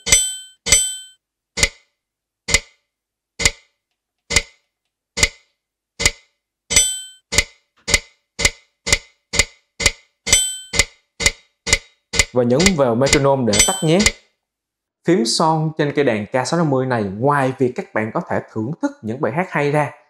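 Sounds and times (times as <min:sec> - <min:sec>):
electronic metronome ticking: 0:00.0 - 0:01.9, 0:02.5 - 0:14.3
ringing accented metronome click: 0:10.3 - 0:10.9, 0:12.6 - 0:14.2
panel buttons pressed: 0:12.2 - 0:14.2.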